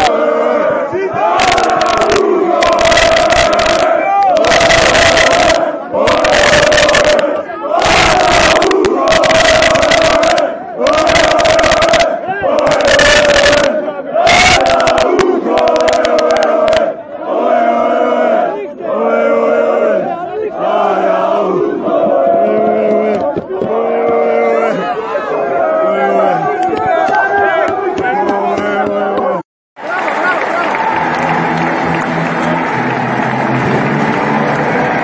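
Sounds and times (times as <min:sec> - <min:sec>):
crowd chanting and shouting: 0:00.0 - 0:35.0.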